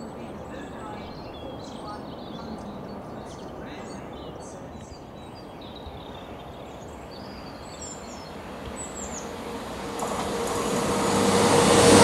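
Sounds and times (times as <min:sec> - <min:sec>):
birds chirping faintly: 0:00.0 - 0:11.9
jet engine rumble: 0:06.4 - 0:12.0.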